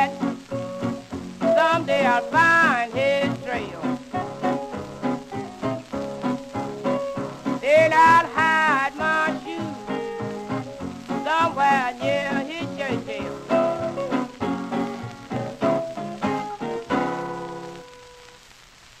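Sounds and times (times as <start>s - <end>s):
blues record playing: 0.0s - 19.0s
record surface hiss and crackle: 0.0s - 19.0s.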